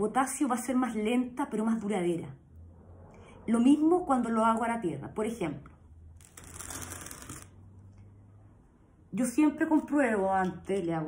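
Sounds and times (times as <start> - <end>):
flowerpot scraping across table: 6.2 - 7.6.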